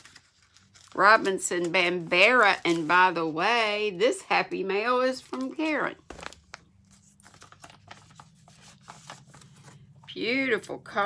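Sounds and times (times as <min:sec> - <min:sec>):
paper rustling: 0:00.0 - 0:03.4, 0:05.2 - 0:09.9
low room hum: 0:00.0 - 0:11.0.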